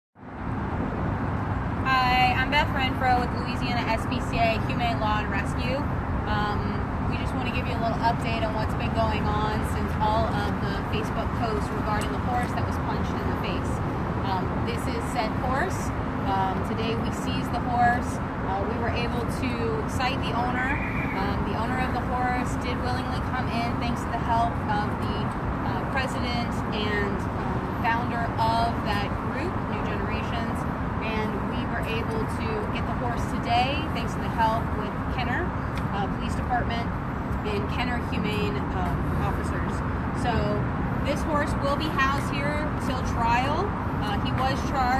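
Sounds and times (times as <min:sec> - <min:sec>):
road traffic rumble: 0:00.2 - 0:44.9
woman talking: 0:01.8 - 0:44.9.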